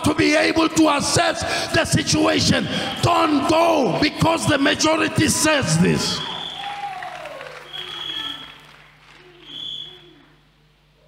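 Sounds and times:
congregation voices: 0.0 - 6.6
people clapping: 5.8 - 10.1.

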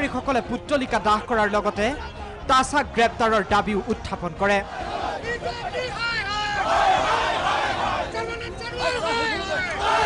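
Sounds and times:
crowd of protesters shouting: 3.6 - 10.0.

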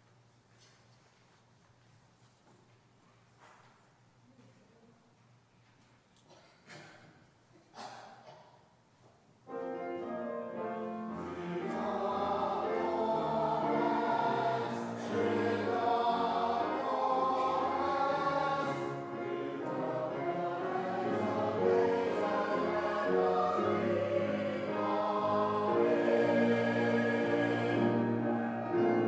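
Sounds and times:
choir singing a hymn: 9.5 - 29.0.

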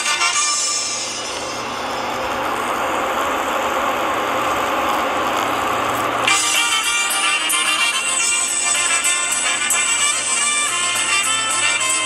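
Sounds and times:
car engine running: 0.0 - 12.0
band music: 6.3 - 12.0.

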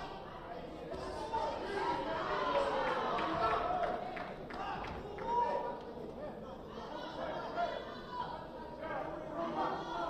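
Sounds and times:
indistinct shouting and chatter: 0.0 - 10.0.

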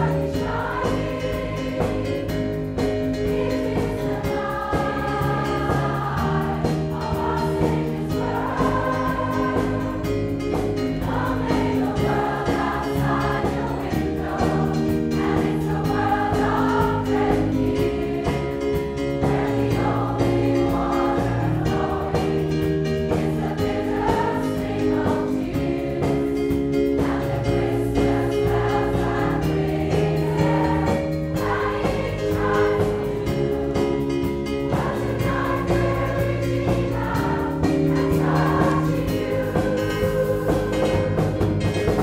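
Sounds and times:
choir singing a carol: 0.0 - 42.0
live band playing: 0.0 - 42.0.

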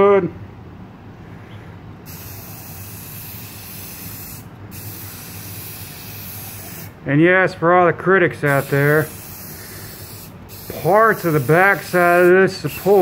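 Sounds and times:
aerosol spray can hissing: 2.1 - 6.9, 8.5 - 13.0.

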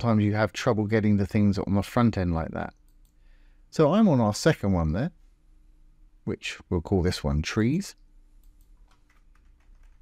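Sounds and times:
faint keyboard typing: 2.7 - 3.2, 8.3 - 10.0.

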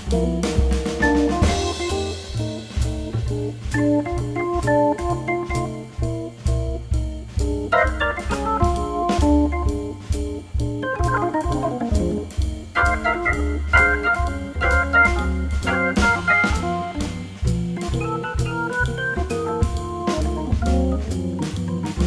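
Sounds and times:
drums with cymbal strokes: 0.0 - 22.0
low bass line: 0.0 - 22.0
organ playing jazz lines: 0.0 - 22.0.

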